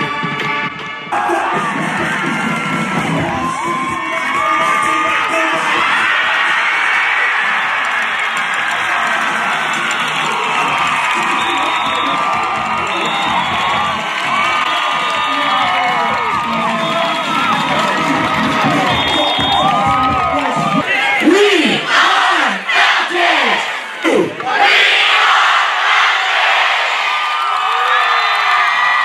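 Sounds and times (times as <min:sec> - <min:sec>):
recorded music: 0:00.0 - 0:22.6
crowd cheering and whooping: 0:01.1 - 0:21.2, 0:25.6 - 0:29.0.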